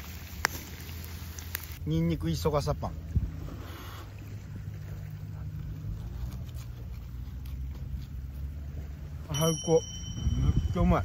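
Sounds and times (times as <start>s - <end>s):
low droning rumble: 0.0s - 11.0s.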